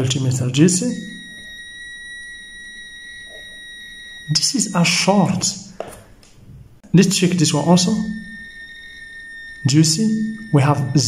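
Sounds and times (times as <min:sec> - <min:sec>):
multimeter continuity beep: 0:00.0 - 0:06.0, 0:06.8 - 0:11.0.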